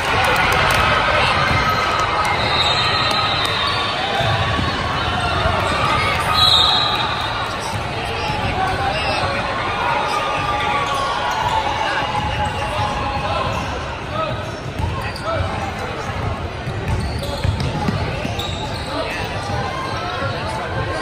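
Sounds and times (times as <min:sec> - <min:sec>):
indistinct voices in a gym: 0:00.0 - 0:21.0.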